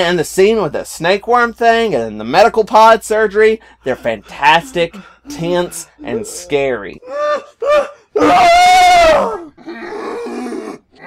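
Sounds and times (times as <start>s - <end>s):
person crying out in pain: 6.0s - 9.6s
long high scream: 7.0s - 9.5s.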